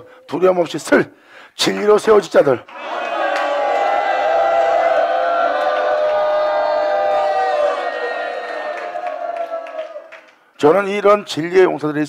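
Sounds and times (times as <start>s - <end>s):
crowd holding a long cry: 2.7s - 10.2s.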